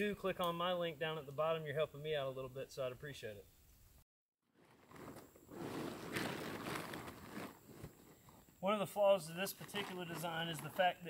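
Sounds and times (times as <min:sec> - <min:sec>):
nylon tent fabric rustling: 0:04.4 - 0:08.6, 0:09.4 - 0:11.0.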